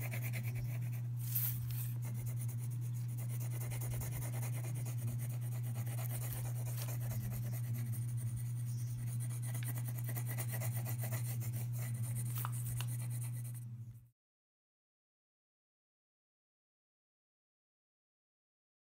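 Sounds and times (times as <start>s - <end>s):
pencil scratching on paper: 0.0s - 13.7s
steady low hum: 0.0s - 14.1s.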